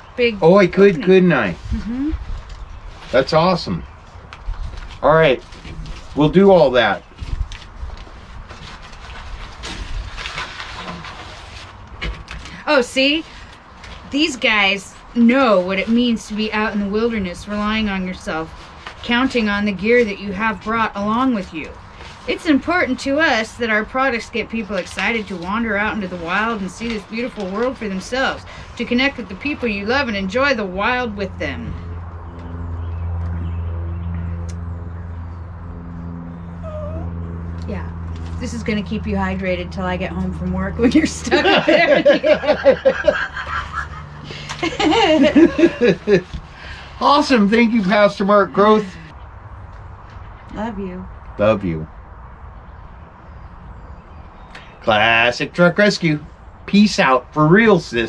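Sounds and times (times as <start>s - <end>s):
paper crinkling: 7.5s - 12.6s
steady low hum: 27.8s - 58.0s
dog whining: 36.4s - 37.5s.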